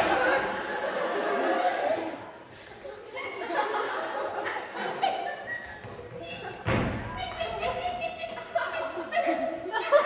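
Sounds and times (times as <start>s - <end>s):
audience voices and laughter: 0.0s - 10.0s
heavy thump on stage floor: 6.6s - 7.1s.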